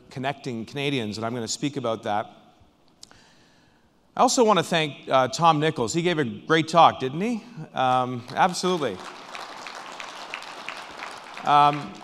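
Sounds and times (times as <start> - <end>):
audience applauding: 7.9 - 12.0.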